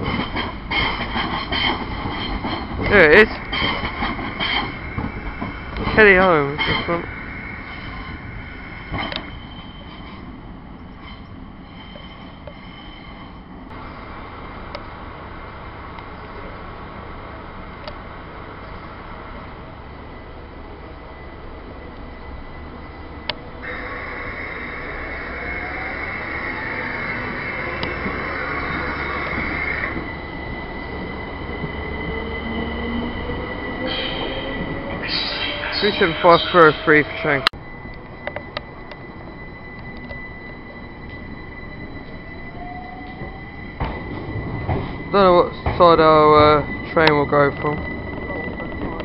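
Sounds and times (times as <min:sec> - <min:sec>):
train wheels and brakes squealing: 0:00.0 - 0:14.0, 0:18.6 - 0:49.0
train motor whine: 0:13.7 - 0:49.0.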